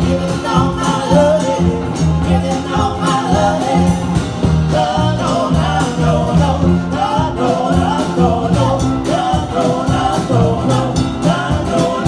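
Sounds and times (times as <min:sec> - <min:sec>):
acoustic guitar: 0:00.0 - 0:12.0
drum kit beat: 0:00.0 - 0:12.0
woman singing: 0:00.0 - 0:12.0.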